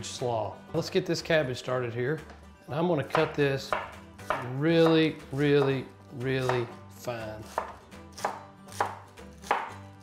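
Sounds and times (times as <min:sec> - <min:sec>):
knife chopping on cutting board: 0:03.0 - 0:06.8, 0:07.4 - 0:10.0.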